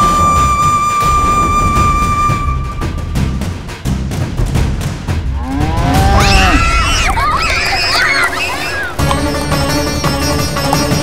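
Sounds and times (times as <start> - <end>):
low drumbeats of music: 1.0 - 11.0
cow mooing: 5.3 - 6.9.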